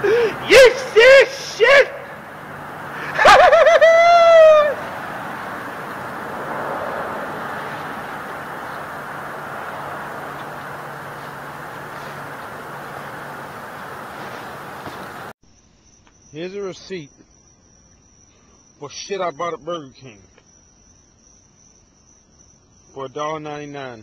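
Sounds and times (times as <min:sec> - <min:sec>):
man crying out: 0:00.0 - 0:02.2, 0:03.0 - 0:04.8
passing road traffic: 0:00.0 - 0:15.4.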